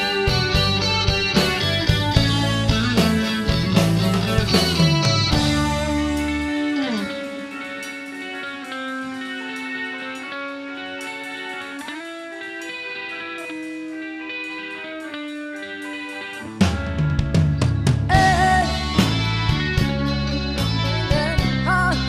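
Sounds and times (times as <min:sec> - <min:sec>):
electric guitar held notes: 0:00.0 - 0:22.0
live band playing: 0:00.0 - 0:22.0.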